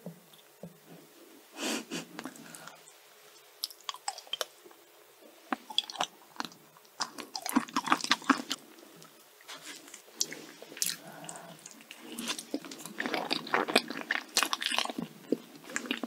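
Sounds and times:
person breathing: 1.5s - 2.9s, 9.6s - 12.4s
person chewing: 3.6s - 4.5s, 5.5s - 16.0s.

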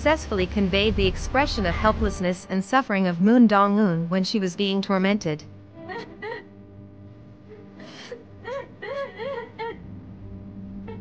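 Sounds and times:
low steady hum: 0.0s - 11.0s
girl sobbing and wailing: 5.8s - 6.5s, 7.8s - 9.8s.

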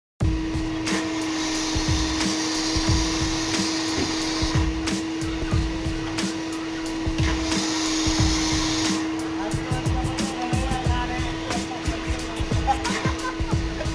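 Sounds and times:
pressure washer motor hum: 0.2s - 13.9s
water spray hiss: 0.7s - 13.9s.

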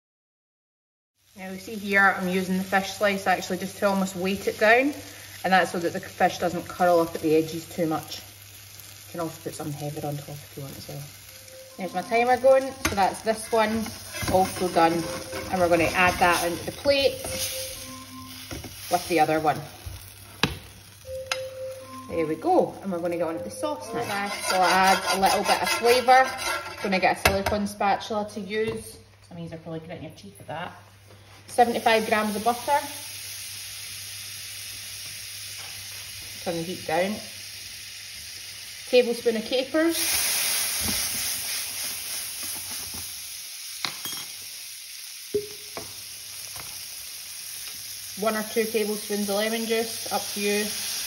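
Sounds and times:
butter sizzling in frying pan: 1.2s - 21.1s, 21.8s - 26.9s, 31.5s - 51.0s.

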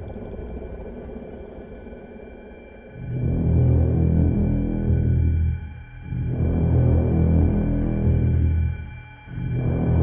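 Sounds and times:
low dark drone: 0.0s - 10.0s.

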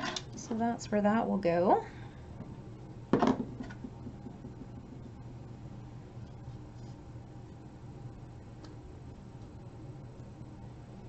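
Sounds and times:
faint low hum: 0.0s - 11.0s
plastic bottle knocking on table: 3.1s - 4.7s.

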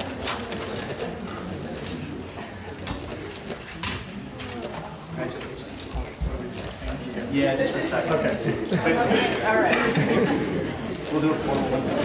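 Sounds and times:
murmuring voices: 0.0s - 12.0s.

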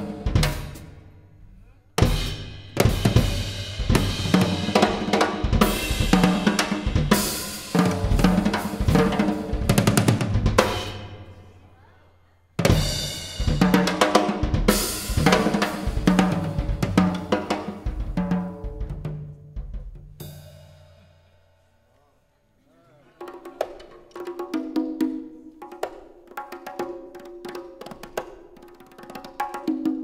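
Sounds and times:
drum kit solo: 0.0s - 1.3s, 2.0s - 11.4s, 12.6s - 21.3s.

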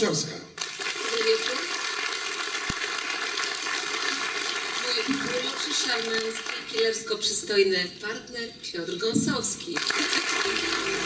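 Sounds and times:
crowd applauding: 0.6s - 7.0s, 9.8s - 11.0s.

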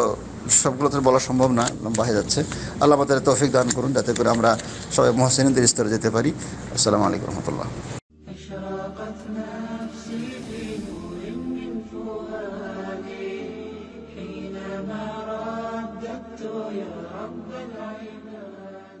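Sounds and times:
person singing slow chant: 8.2s - 19.0s
hissing swish: 9.3s - 13.8s.

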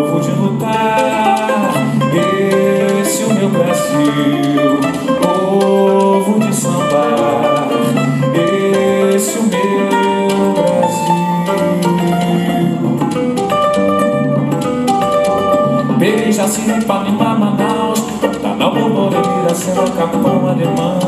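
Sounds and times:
light percussion: 0.0s - 21.0s
plucked string melody: 0.0s - 21.0s.

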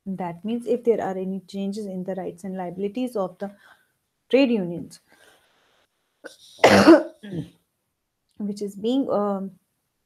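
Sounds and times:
woman coughing: 6.6s - 7.5s.

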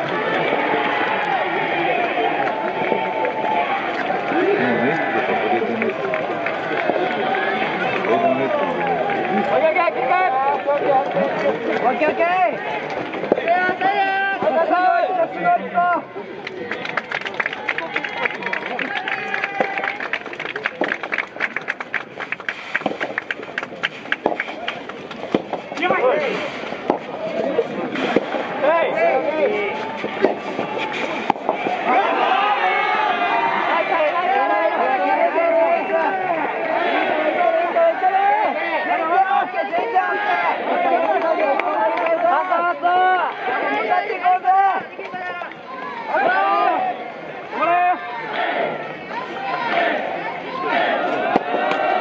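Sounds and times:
crowd shouting and cheering: 0.0s - 52.0s
rapid pops and claps: 5.6s - 8.2s, 16.4s - 26.0s, 30.0s - 32.0s
rubber ball cracking off rackets: 30.0s - 31.9s.

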